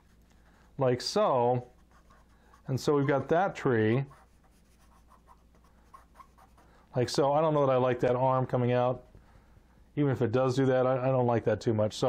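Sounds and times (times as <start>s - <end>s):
pencil scratching on paper: 0.0s - 0.6s, 1.6s - 6.9s.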